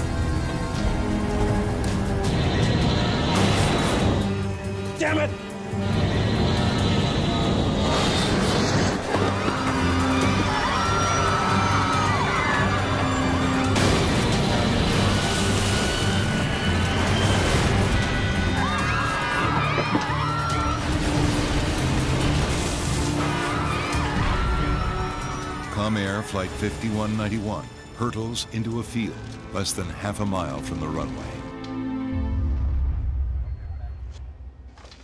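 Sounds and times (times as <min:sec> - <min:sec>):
dramatic orchestral music: 0:00.0 - 0:33.9.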